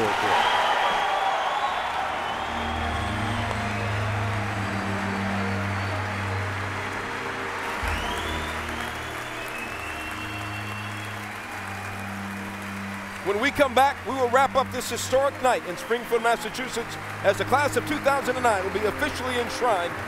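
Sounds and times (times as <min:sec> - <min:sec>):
large audience applauding: 0:00.0 - 0:20.0
low background music: 0:01.1 - 0:20.0.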